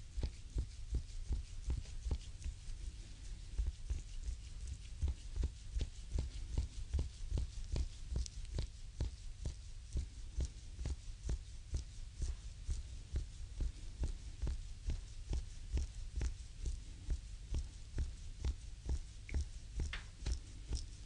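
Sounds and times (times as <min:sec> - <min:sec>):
hands rubbing bare foot sole: 0:00.0 - 0:21.0.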